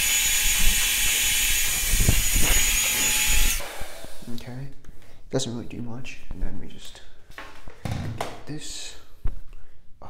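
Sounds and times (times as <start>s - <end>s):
hair dryer blowing: 0.0s - 4.5s.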